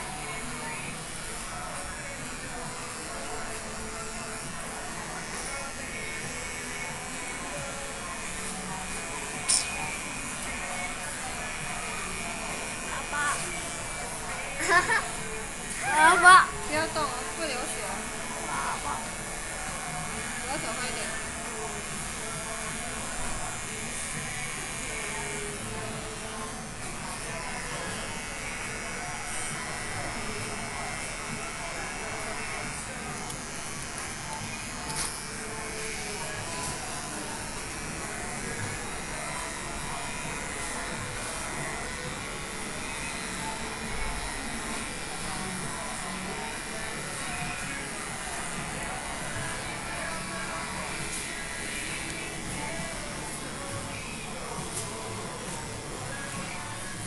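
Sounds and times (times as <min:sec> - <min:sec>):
background chatter: 0:00.0 - 0:57.0
electric hair clippers running: 0:00.0 - 0:57.0
music: 0:00.0 - 0:57.0.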